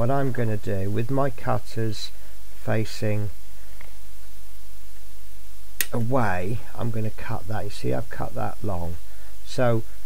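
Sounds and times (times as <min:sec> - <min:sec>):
steady low hum: 0:00.0 - 0:10.0
sharp click: 0:05.8 - 0:06.1.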